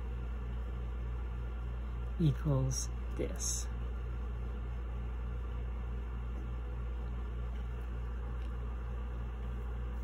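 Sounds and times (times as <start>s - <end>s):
low pulsing hum: 0.0s - 10.0s.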